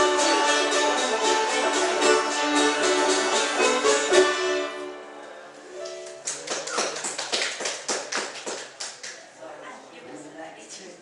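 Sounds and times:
acoustic string band: 0.0s - 6.4s
sharp irregular taps or claps: 6.0s - 9.2s.

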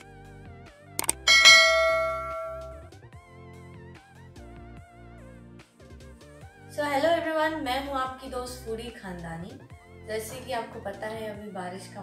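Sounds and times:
soft background music: 0.0s - 12.0s
button click: 1.0s - 2.7s
bright bell chime: 1.0s - 2.8s.

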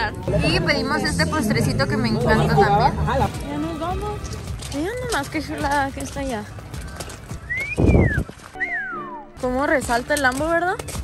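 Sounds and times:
wolf whistle: 7.4s - 9.2s.

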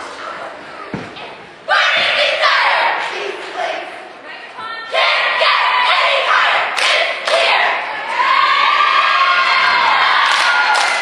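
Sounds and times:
cheerleaders shouting in unison: 1.7s - 11.0s.

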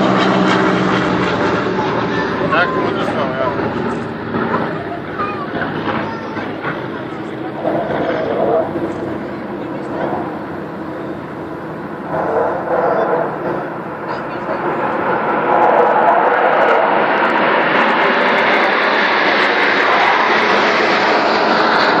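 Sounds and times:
military jets roaring overhead: 0.0s - 22.0s.

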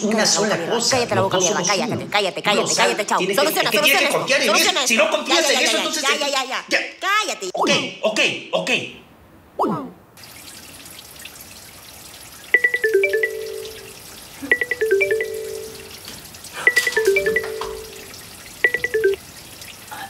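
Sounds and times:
running tap water: 10.2s - 20.0s
mobile phone ringtone: 12.6s - 15.9s, 16.6s - 19.2s.

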